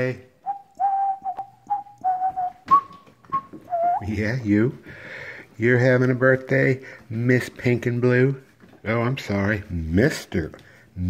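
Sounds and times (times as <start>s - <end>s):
person whistling: 0.4s - 4.2s.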